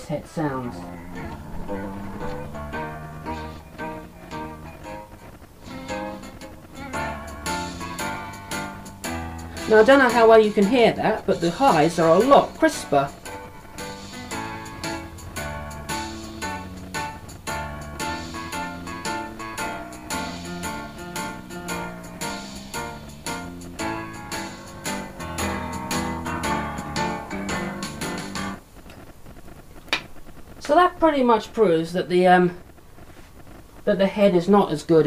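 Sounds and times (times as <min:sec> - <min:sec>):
music from tape playback: 0:00.1 - 0:30.8.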